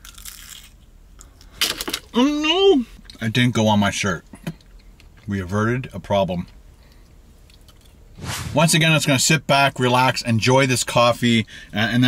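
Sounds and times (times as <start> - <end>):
pastry crunching: 0.0 - 1.6.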